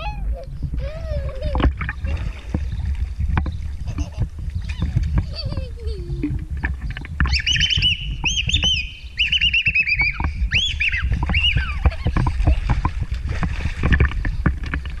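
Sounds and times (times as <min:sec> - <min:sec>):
water sloshing and splashing: 0:00.0 - 0:15.0
bird chirping: 0:07.2 - 0:11.9.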